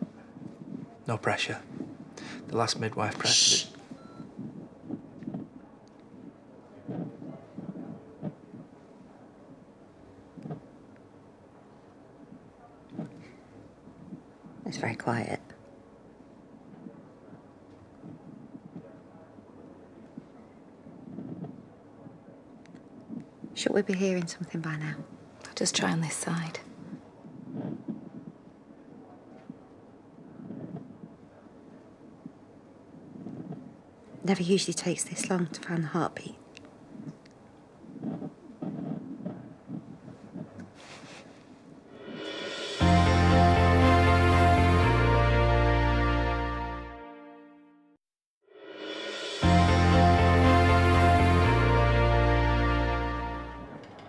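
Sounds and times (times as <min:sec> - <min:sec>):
doppler whooshes and scrapes: 0:41.9 - 0:42.9
doppler monitor whooshing static: 0:41.9 - 0:44.9, 0:48.5 - 0:52.3.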